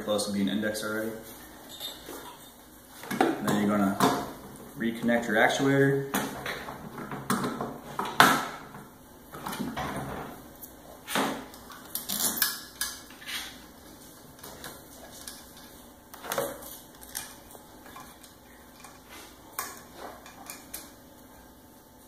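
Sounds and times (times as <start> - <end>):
metallic clinks and knocks: 1.6 - 2.6.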